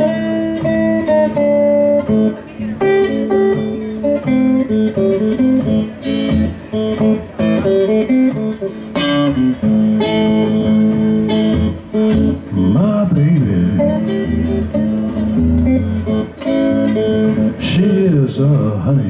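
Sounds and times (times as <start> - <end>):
blues electric guitar: 0.0 - 19.0.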